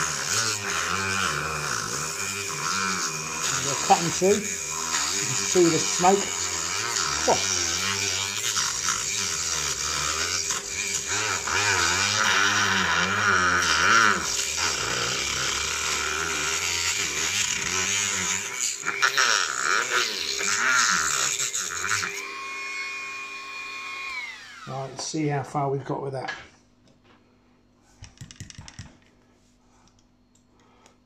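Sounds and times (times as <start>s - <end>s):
rotary tool cutting plastic: 0.0s - 24.8s
rotary tool whining: 0.0s - 25.0s.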